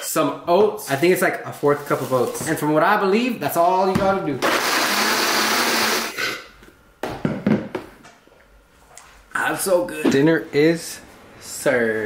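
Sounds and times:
blender blending ice: 4.4 - 6.2.

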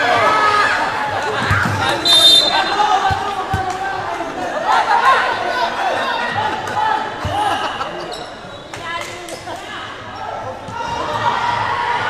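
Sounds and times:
voices of people: 0.0 - 12.0.

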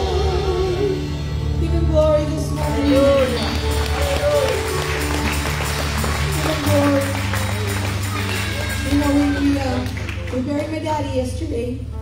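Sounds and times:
woman speaking into microphone: 8.8 - 11.9.

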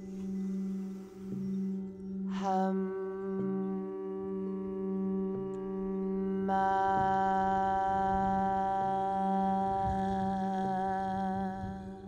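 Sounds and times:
person humming a held tone: 0.0 - 12.0
singing bowls droning: 0.0 - 12.0.

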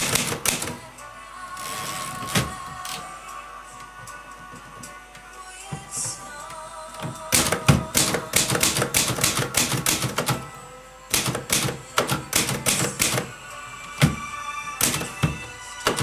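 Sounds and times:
background music: 0.0 - 16.0
typewriter keys clicking: 7.3 - 10.4, 11.1 - 13.3.

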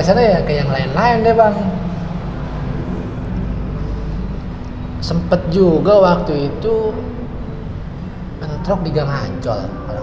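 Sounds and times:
faint constant hum: 0.0 - 10.0
low background rumble: 0.0 - 10.0.

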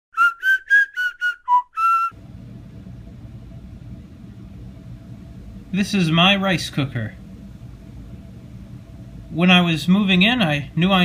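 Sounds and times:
whistled tune: 0.1 - 2.2
steady low hum: 2.1 - 11.0.

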